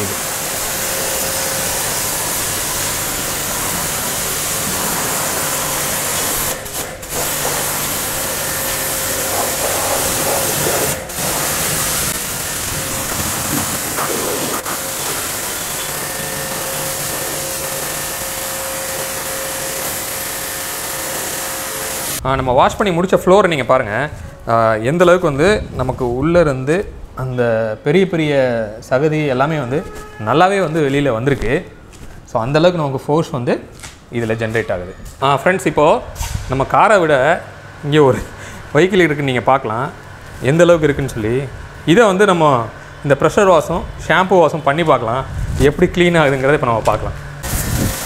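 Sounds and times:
pressure washer pump humming: 0.0s - 22.2s, 36.6s - 48.0s
water jet hissing: 0.0s - 22.2s, 47.4s - 48.0s.

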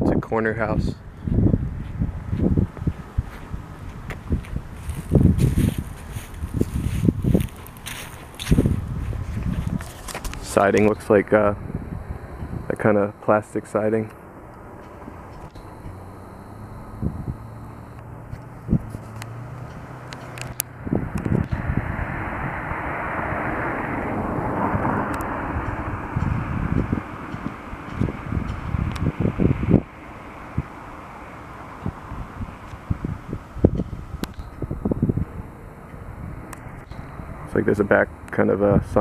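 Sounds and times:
passing traffic: 0.0s - 39.0s
wind buffeting microphone: 0.0s - 39.0s.

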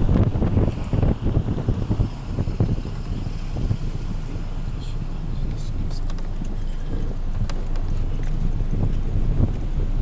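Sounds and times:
wind rumbling on microphone: 0.0s - 10.0s
footsteps on pavement: 5.4s - 10.0s.

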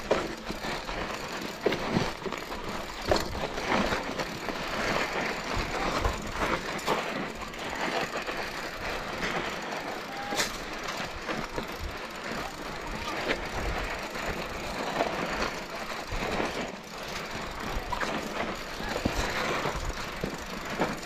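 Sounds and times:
bike rattling and knocking: 0.0s - 21.0s
bike tyres crunching on gravel: 0.0s - 21.0s.

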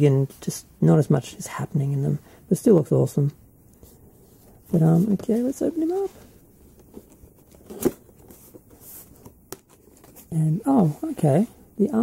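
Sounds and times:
box rustling and scraping: 4.2s - 11.4s.

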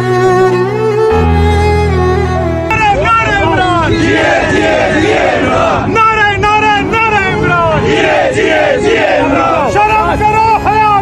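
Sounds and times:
crowd shouting slogans: 2.9s - 6.4s, 7.1s - 9.7s.

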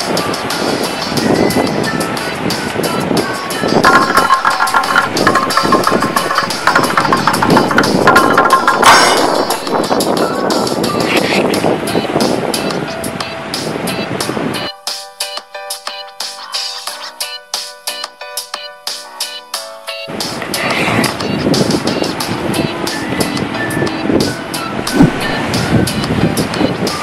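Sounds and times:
surf on rocky shore: 0.0s - 14.6s, 20.1s - 27.0s
gusting wind: 0.0s - 14.7s, 20.1s - 27.0s
background music: 0.0s - 27.0s.

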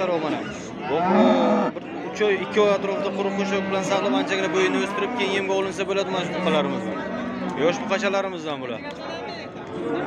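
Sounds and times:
cattle mooing: 0.9s - 1.8s, 2.8s - 8.1s.

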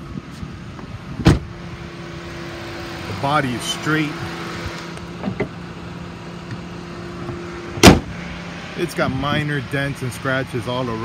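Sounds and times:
car engine idling: 0.1s - 11.0s
car hood slamming shut: 1.2s - 1.5s, 7.8s - 8.2s.

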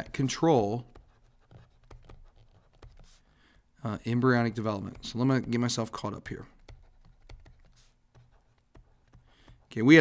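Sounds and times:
stylus scratching on tablet: 0.0s - 3.4s, 4.0s - 10.0s
stylus tapping: 0.8s - 3.2s, 4.2s - 10.0s.

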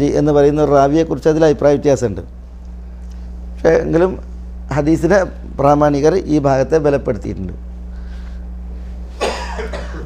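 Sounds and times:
low hum: 0.0s - 10.0s
man coughing: 9.2s - 10.0s.

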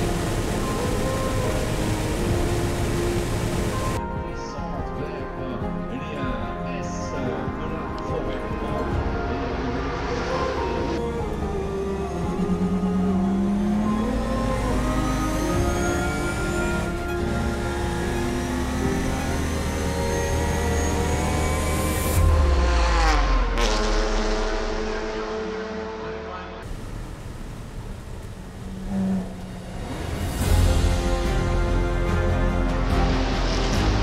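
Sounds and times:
race car engine revving: 9.2s - 30.8s.

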